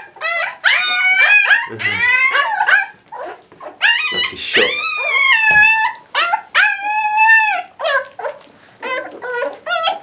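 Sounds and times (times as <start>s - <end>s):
puppies whining: 0.0s - 10.0s
puppies yelping: 0.0s - 10.0s.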